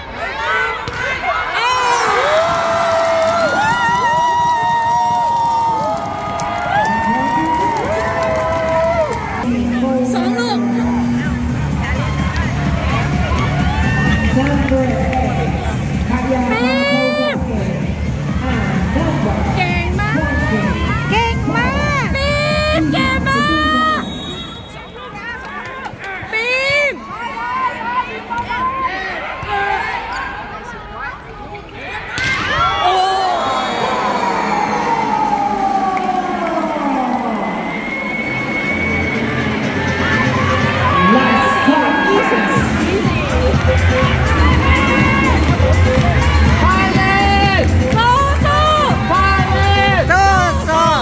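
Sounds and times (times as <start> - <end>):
crowd chatter: 6.3 - 51.0.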